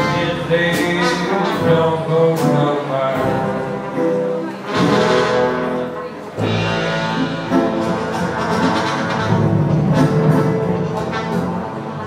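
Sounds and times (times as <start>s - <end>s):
trumpet: 0.0s - 3.1s, 4.5s - 12.0s
acoustic guitar: 0.0s - 12.0s
double bass: 0.0s - 12.0s
drums: 0.0s - 12.0s
trombone: 0.0s - 12.0s.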